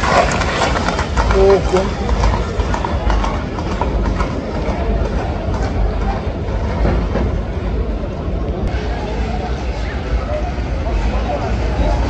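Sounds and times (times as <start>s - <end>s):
horse hooves clattering on asphalt: 0.0s - 7.6s
crowd voices: 0.0s - 12.0s.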